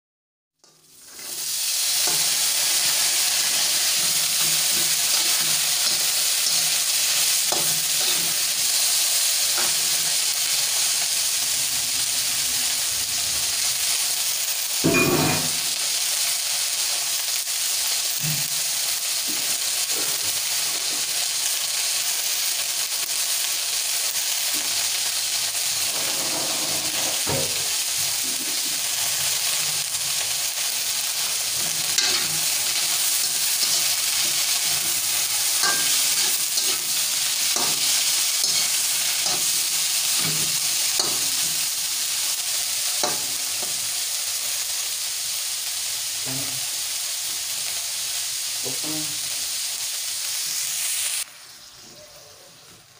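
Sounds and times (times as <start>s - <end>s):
beans sizzling in a wok: 0.6s - 52.9s
metal spatula scraping a pan: 1.0s - 10.6s, 25.7s - 27.6s, 31.5s - 42.0s.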